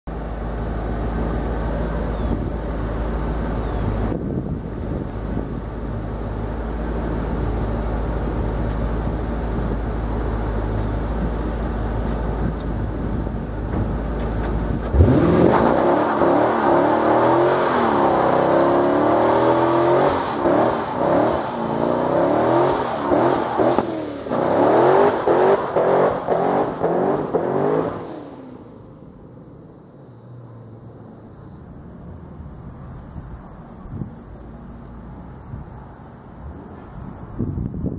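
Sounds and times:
car engine idling and revving: 0.0s - 37.9s.

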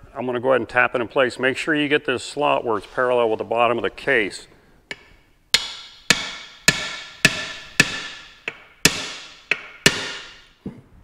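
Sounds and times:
hammer tapping on metal: 4.9s - 10.5s.

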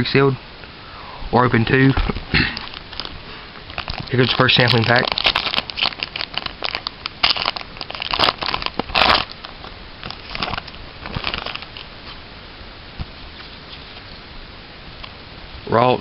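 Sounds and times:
foil wrapper tearing and crinkling: 2.0s - 11.9s.

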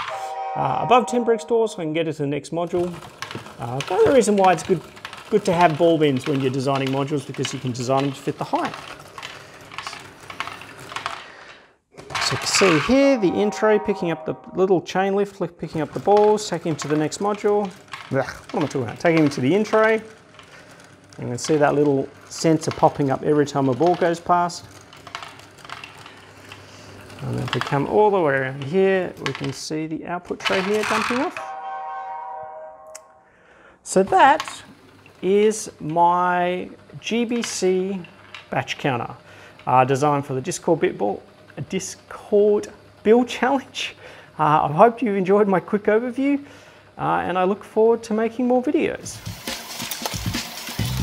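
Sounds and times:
plastic balls clicking and rattling: 2.7s - 13.0s, 15.8s - 29.6s, 30.4s - 31.4s, 49.1s - 51.0s.

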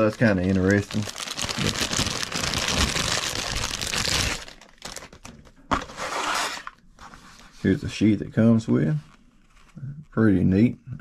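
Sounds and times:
plastic bag crinkling: 0.0s - 5.6s.

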